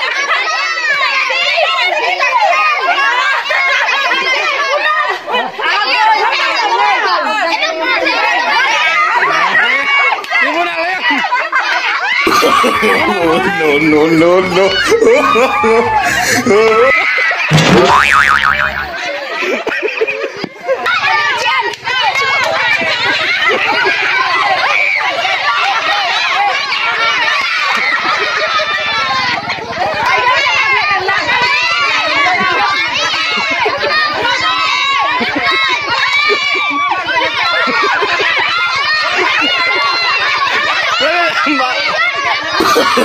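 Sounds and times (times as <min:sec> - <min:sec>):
children shouting: 0:00.0 - 0:43.0
cartoon boing sound effect: 0:17.5 - 0:19.1.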